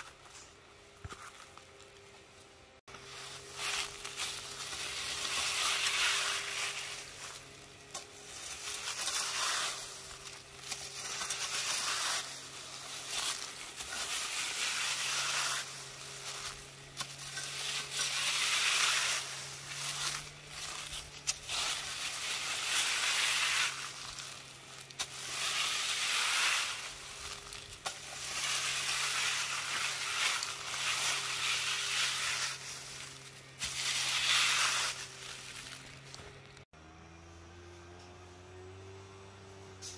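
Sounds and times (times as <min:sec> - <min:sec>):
dry leaves rustling and crunching: 0:00.0 - 0:36.6.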